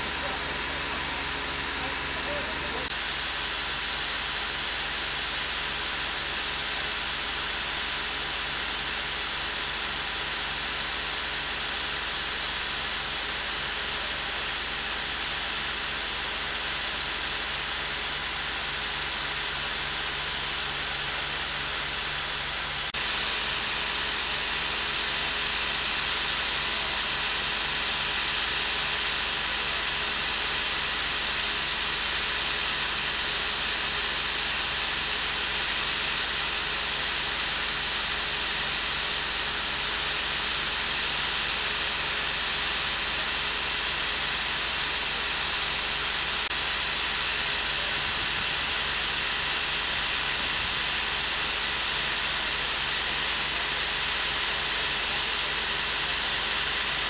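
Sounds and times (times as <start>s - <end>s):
water rushing through water wheel: 23.0s - 57.0s.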